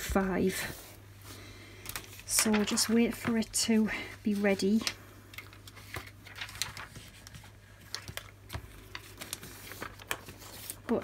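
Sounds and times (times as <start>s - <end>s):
plastic pouch and card handled: 4.3s - 11.0s.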